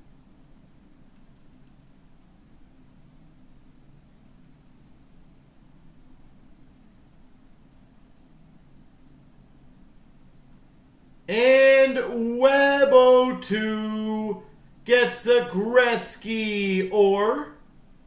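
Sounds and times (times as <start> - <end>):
low steady room hum: 0.0 - 18.0
faint computer mouse clicks: 1.1 - 1.8, 4.2 - 4.8, 7.7 - 8.3.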